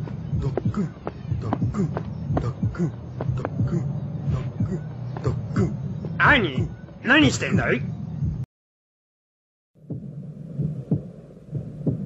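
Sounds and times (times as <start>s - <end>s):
heartbeat through stethoscope: 0.0s - 5.7s, 9.8s - 12.0s
steady low hum: 0.0s - 8.5s, 9.8s - 12.0s.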